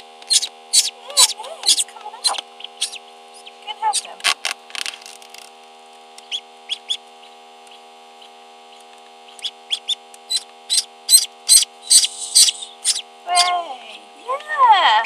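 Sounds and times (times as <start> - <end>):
ducklings peeping: 0.0 - 4.2, 6.2 - 15.0
steady electrical hum: 0.0 - 15.0.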